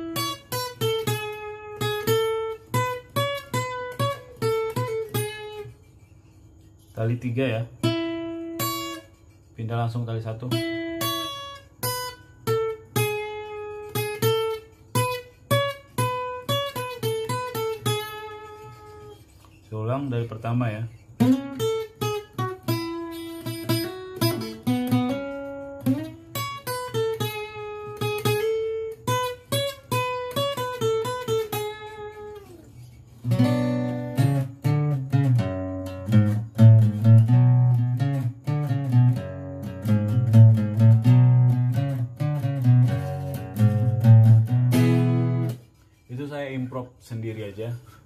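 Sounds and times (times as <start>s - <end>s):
acoustic guitar playing: 0.0s - 48.0s.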